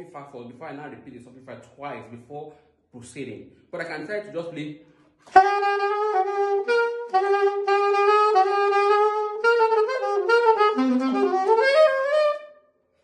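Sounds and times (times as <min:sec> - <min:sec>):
solo jazz saxophone: 0:05.2 - 0:13.0.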